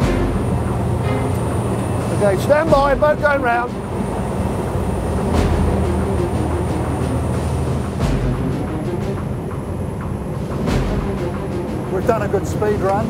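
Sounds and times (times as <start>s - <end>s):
boat engines running hard: 0.0s - 13.0s
music: 0.0s - 13.0s
rush of boat wake: 0.0s - 13.0s.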